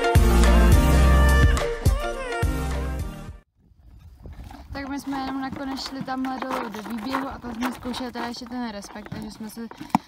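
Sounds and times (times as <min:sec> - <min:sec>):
young woman speaking: 0:04.7 - 0:10.0.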